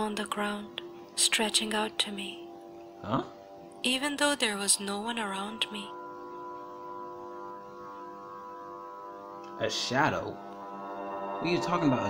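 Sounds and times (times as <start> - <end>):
sustained drone chord: 0.0 - 12.0.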